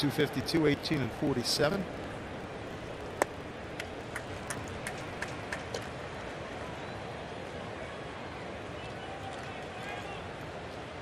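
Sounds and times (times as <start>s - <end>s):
people clapping: 3.8s - 6.0s.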